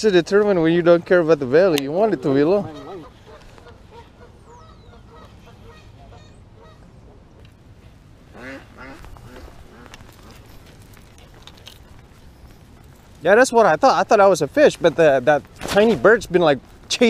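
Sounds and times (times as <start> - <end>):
low outdoor background: 0.0 - 17.0
waterfowl calling: 2.1 - 7.2, 8.3 - 13.0.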